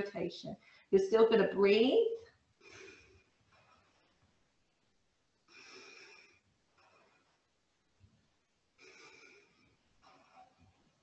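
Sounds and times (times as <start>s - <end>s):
woman breathing slowly: 0.6s - 1.0s, 2.5s - 4.5s, 5.4s - 7.8s, 8.6s - 11.0s.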